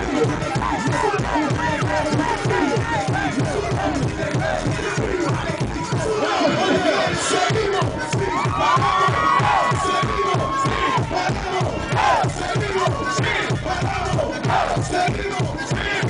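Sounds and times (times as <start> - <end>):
crowd cheering: 0.0 - 16.0
reggaeton music over pa: 0.0 - 16.0
voices shouting and chanting: 0.0 - 16.0.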